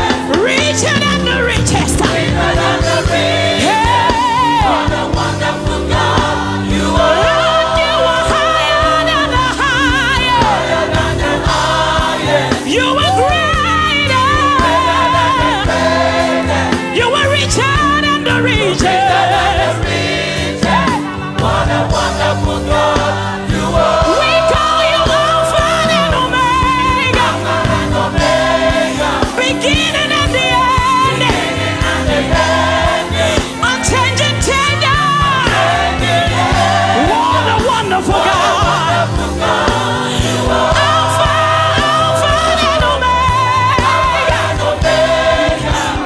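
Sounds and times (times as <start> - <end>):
gospel choir singing: 0.0 - 46.0
instrumental accompaniment: 0.0 - 46.0
lead vocalist singing: 0.0 - 46.0.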